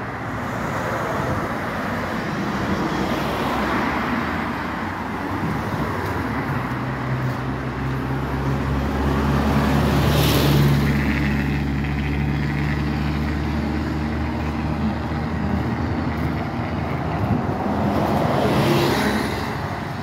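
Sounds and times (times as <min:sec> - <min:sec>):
bus driving past: 0:00.0 - 0:20.0
cars passing: 0:00.0 - 0:20.0.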